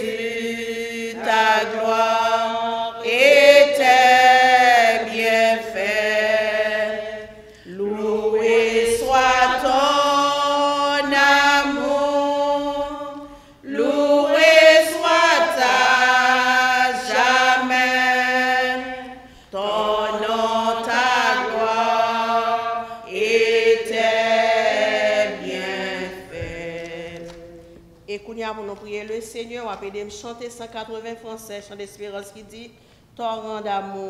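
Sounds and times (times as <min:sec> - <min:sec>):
woman singing a hymn: 0:00.0 - 0:34.0.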